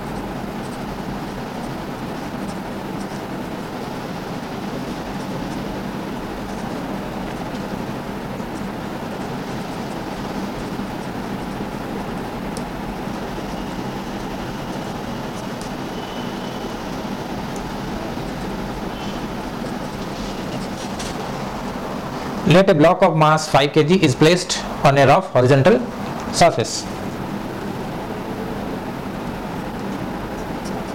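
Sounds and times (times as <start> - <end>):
marker pen writing on whiteboard: 0.0 - 21.7
background hum and hiss: 0.0 - 30.9.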